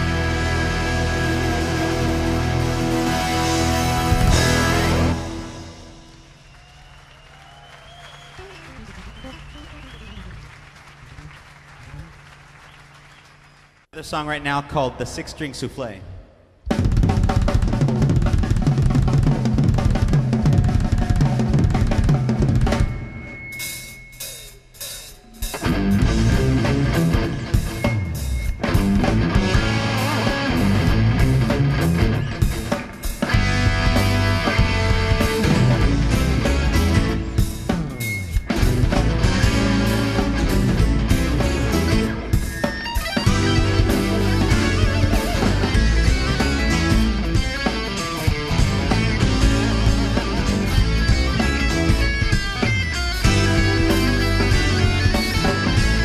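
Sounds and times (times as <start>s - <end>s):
electric guitar: 0.0s - 6.2s, 25.4s - 56.0s
live rock band playing: 0.0s - 7.0s, 16.7s - 56.0s.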